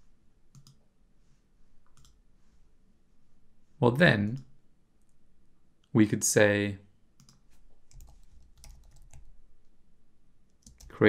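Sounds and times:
typing on computer keyboard: 0:00.5 - 0:00.8, 0:07.2 - 0:09.3, 0:10.6 - 0:11.0.

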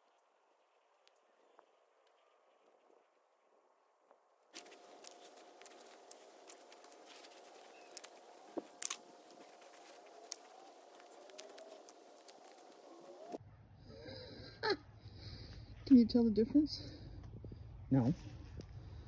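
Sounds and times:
phone being handled: 0:04.6 - 0:13.4.

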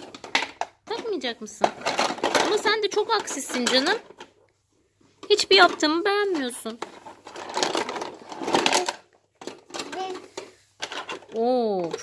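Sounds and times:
plastic toy tools clattering: 0:00.0 - 0:04.4, 0:05.2 - 0:12.0.

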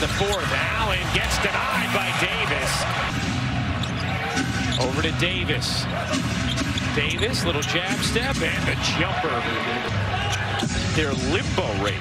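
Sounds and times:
crowd hubbub: 0:00.5 - 0:04.9
sneakers squeaking: 0:03.7 - 0:05.1, 0:05.8 - 0:08.2.

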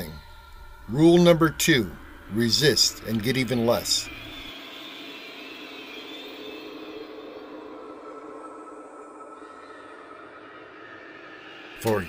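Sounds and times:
faint high whine: 0:00.0 - 0:12.0
low hum: 0:00.0 - 0:12.0.

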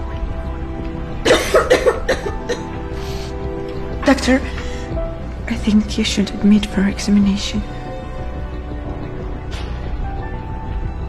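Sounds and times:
soft background music: 0:00.0 - 0:11.0
person coughing: 0:01.2 - 0:02.8.

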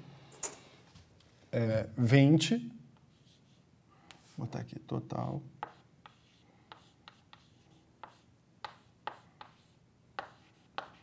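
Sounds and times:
chalk tapping and scratching: 0:03.0 - 0:04.5, 0:05.6 - 0:11.0.

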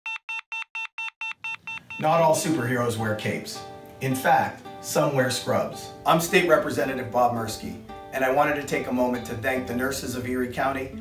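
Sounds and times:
electronic alarm beeping: 0:00.1 - 0:02.2.

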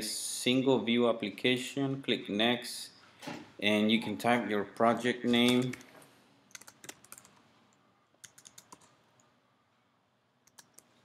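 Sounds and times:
computer keyboard keystrokes: 0:06.5 - 0:07.3, 0:08.2 - 0:08.9, 0:10.5 - 0:10.9.

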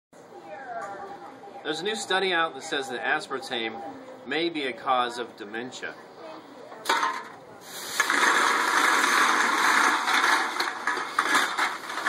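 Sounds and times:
cans clattering: 0:06.9 - 0:12.0
plastic bag rustling: 0:07.7 - 0:12.0.

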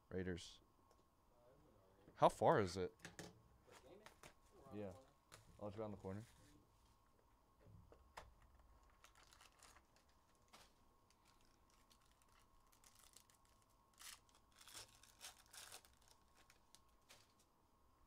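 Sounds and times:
wrapper crinkling and tearing: 0:08.8 - 0:17.5.

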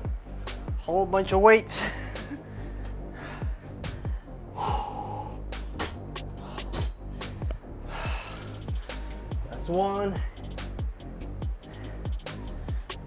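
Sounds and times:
music with kick-drum beat: 0:00.0 - 0:01.5, 0:02.1 - 0:13.0
man breathing heavily: 0:00.1 - 0:00.8, 0:01.7 - 0:09.5, 0:10.1 - 0:13.0.

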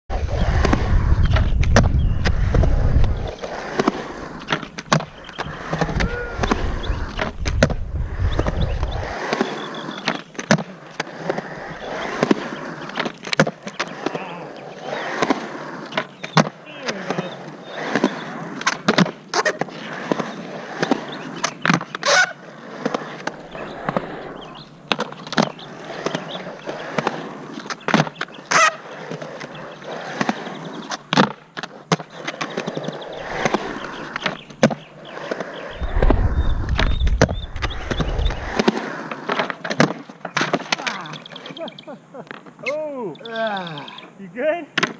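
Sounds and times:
skateboard wheels rolling on concrete: 0:00.1 - 0:44.9
low rumble: 0:35.7 - 0:38.6.

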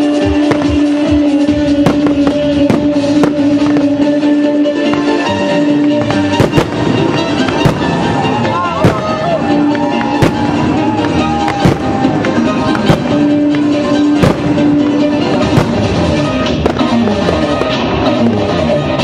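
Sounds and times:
fireworks bursting with sharp bangs: 0:00.0 - 0:19.0
loud music with held notes: 0:00.0 - 0:19.0.

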